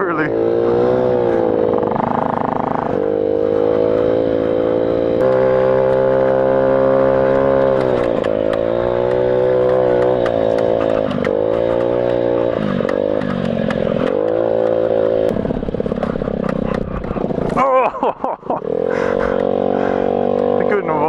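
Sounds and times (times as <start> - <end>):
motorcycle engine revving: 0.0 - 21.0.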